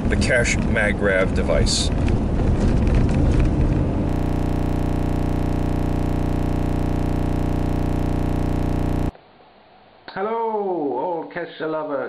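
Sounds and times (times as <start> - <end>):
steady electronic buzz: 4.1 - 9.1.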